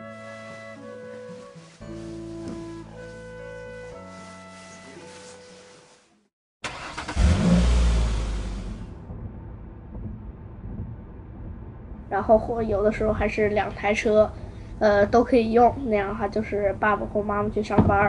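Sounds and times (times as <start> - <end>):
soft background music: 0.0 - 6.2
car engine and road noise: 6.6 - 12.1.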